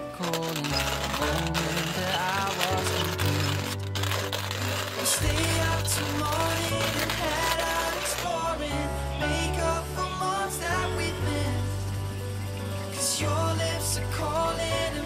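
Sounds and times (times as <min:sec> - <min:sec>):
sustained bass notes: 0:00.7 - 0:15.0.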